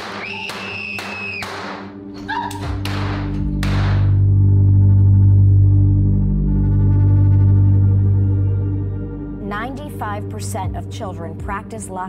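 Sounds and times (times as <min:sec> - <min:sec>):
low music drone: 0:01.9 - 0:12.0.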